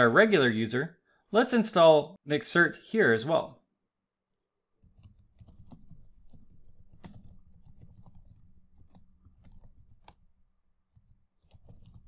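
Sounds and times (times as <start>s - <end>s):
keyboard typing: 4.8s - 10.3s, 10.9s - 12.0s.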